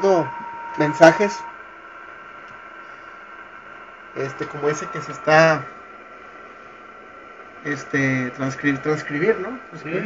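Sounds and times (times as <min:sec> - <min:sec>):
faint steady tone: 0:00.0 - 0:05.8
radio static hiss: 0:00.0 - 0:10.0.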